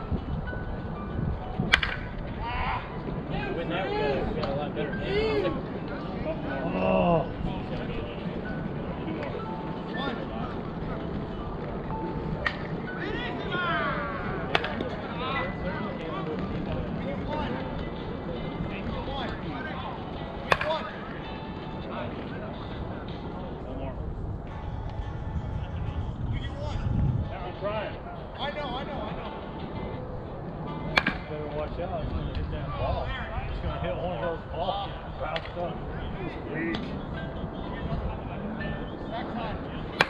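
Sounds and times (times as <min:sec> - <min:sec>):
steady background noise: 0:00.0 - 0:40.0.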